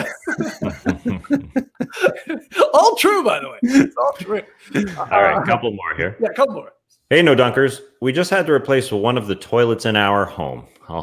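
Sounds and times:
men laughing: 0:00.0 - 0:03.0, 0:03.6 - 0:05.6.

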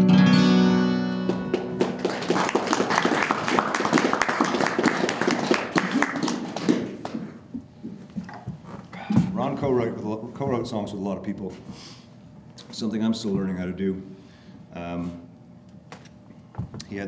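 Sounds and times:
acoustic guitar chord: 0:00.0 - 0:02.0
audience applauding: 0:01.2 - 0:07.4.

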